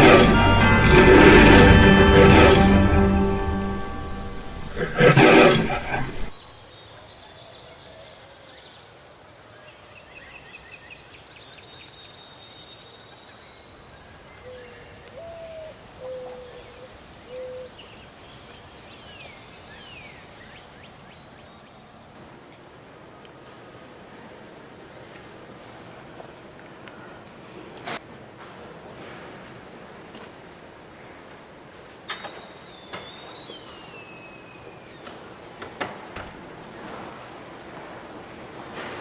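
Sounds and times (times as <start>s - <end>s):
music: 0.0s - 5.2s
birds chirping and trilling: 0.0s - 8.8s.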